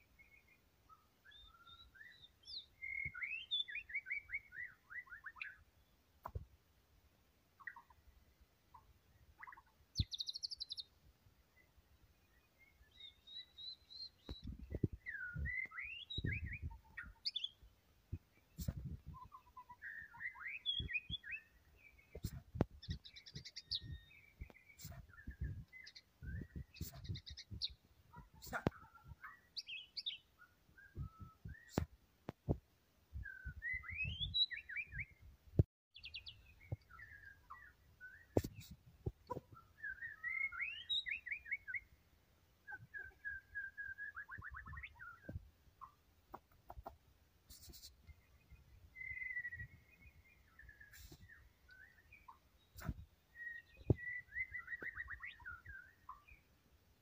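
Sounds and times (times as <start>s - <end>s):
bird singing whistles and trills: 0.2s - 5.6s, 12.4s - 17.6s, 18.6s - 31.9s, 33.2s - 35.2s, 36.0s - 41.9s, 42.7s - 45.4s, 47.5s - 56.4s.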